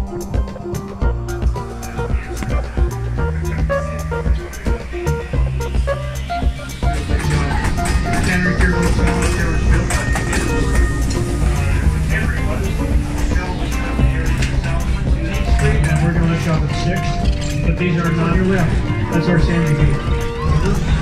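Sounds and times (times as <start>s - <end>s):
background music with bass notes: 0.0s - 21.0s.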